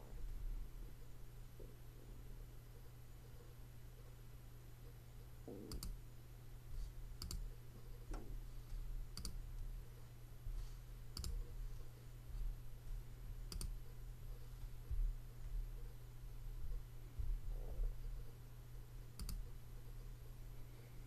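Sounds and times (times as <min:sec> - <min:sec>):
low electrical hum: 0:00.0 - 0:21.0
computer mouse clicks: 0:05.7 - 0:06.0, 0:07.2 - 0:07.5, 0:09.1 - 0:09.4, 0:11.1 - 0:11.5, 0:13.5 - 0:13.8, 0:19.2 - 0:19.5.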